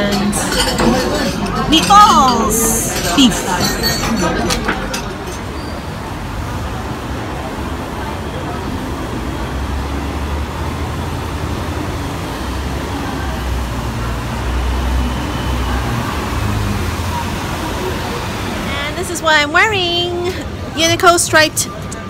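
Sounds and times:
bus engine rumble passing: 0.0s - 22.0s
street traffic: 0.0s - 22.0s.

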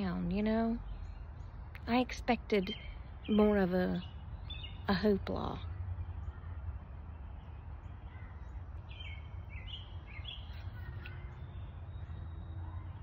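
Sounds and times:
bird chirping: 0.0s - 13.0s.

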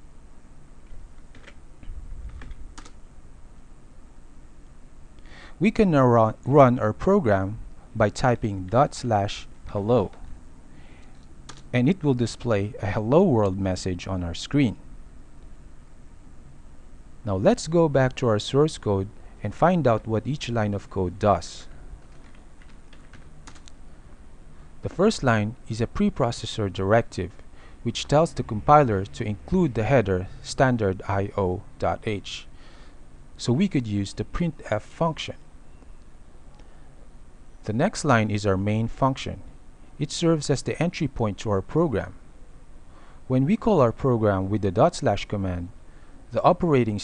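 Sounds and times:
low steady hum: 0.0s - 47.0s
keyboard keystrokes: 22.0s - 23.7s.

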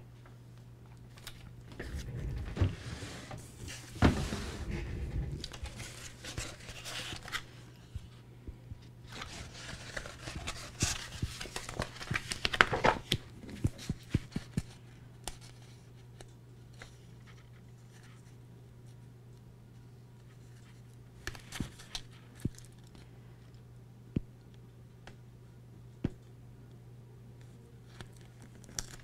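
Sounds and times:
vinyl sheet crinkling: 3.5s - 8.2s, 9.0s - 18.4s, 27.8s - 29.0s.

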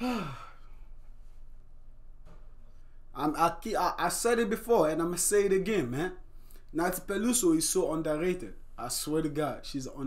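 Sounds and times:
man sighing: 0.0s - 0.6s.

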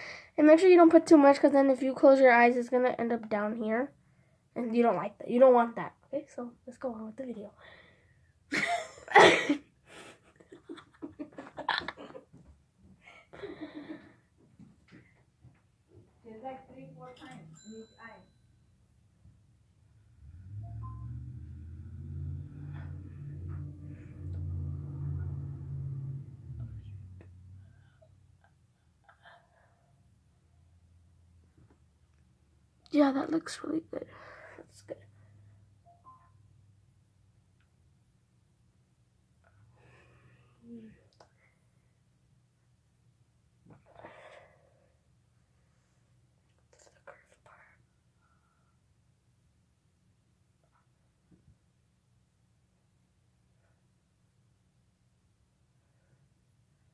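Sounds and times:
faint whispering: 46.7s - 48.0s.

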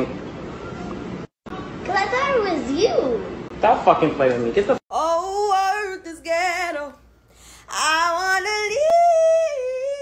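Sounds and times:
woman singing yodel-like note: 4.9s - 7.0s.

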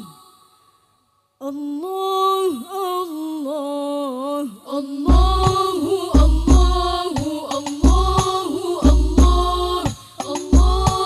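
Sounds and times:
woman singing: 1.4s - 11.0s
frame drums booming: 5.1s - 11.0s.

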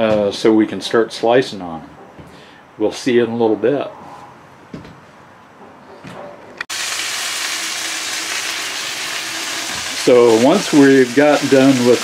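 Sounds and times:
steaks sizzling in a skillet: 6.7s - 12.0s.

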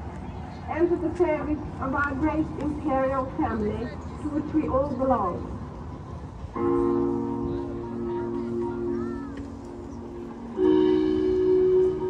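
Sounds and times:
marching band chord: 10.0s - 12.0s.

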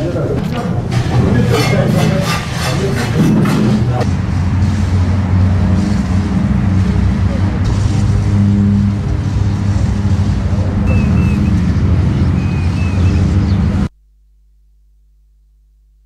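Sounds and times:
low mechanical engine rumble: 3.7s - 13.9s.

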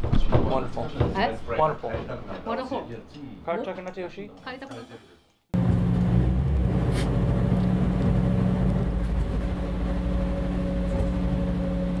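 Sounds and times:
train engine hum: 5.6s - 12.0s.

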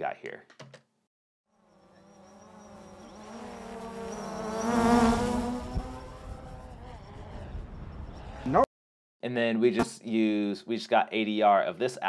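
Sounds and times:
drone propeller buzzing hum: 1.5s - 8.2s.

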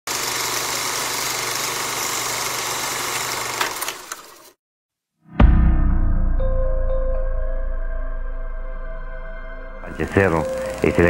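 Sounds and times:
film projector running: 0.1s - 4.6s, 10.5s - 11.0s.

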